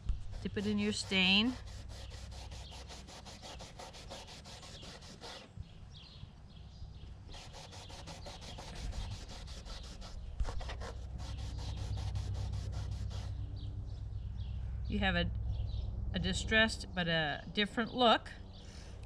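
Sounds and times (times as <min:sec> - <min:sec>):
rag rubbing rough wood: 0:00.2 - 0:05.5, 0:07.3 - 0:13.3.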